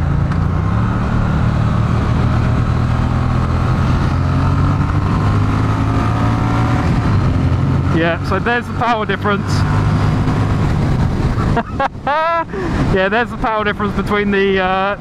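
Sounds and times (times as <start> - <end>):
motorcycle engine accelerating: 0.0 - 11.6
road and wind noise: 0.0 - 15.0.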